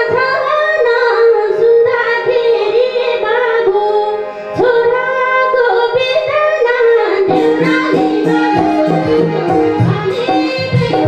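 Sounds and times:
women singing folk song: 0:00.0 - 0:11.0
hand drum: 0:07.3 - 0:11.0.

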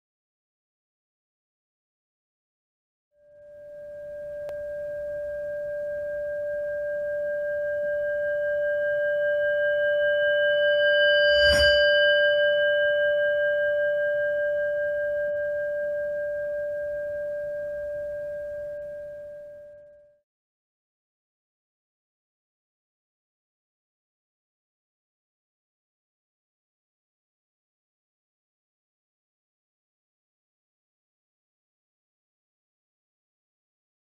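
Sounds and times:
bell-like ringing tone: 0:03.2 - 0:20.2
sharp strike: 0:11.1 - 0:12.3.

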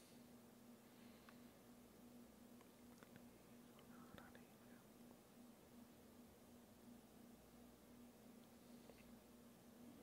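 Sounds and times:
faint low hum: 0:00.0 - 0:10.0
faint whisper: 0:03.0 - 0:05.0.

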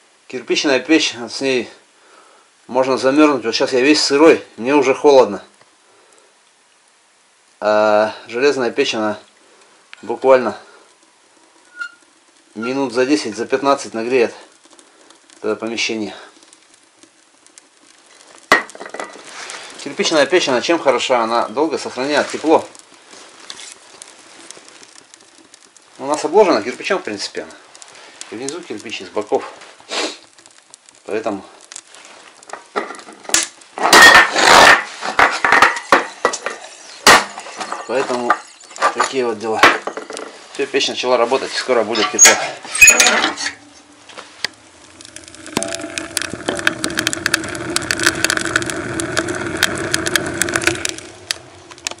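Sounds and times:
fire crackling in wood stove: 0:00.0 - 0:52.0.

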